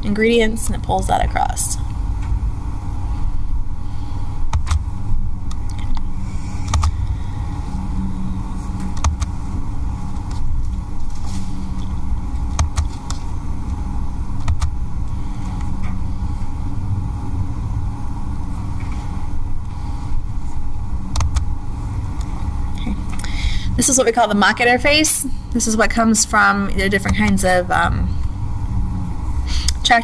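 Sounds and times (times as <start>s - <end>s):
low rumble of room noise: 0.0s - 30.0s.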